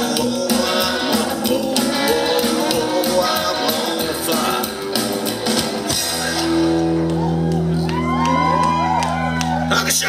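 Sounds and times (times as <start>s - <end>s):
band playing live: 0.0s - 10.0s.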